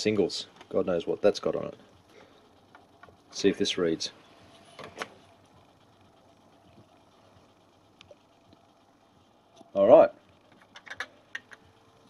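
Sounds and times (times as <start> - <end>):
cd player mechanism noise: 2.6 - 8.8, 9.5 - 12.0.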